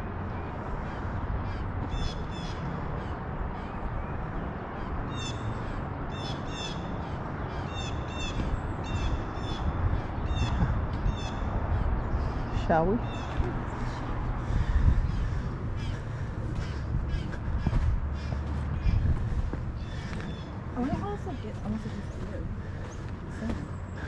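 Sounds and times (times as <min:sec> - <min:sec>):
low background rumble: 0:00.0 - 0:24.0.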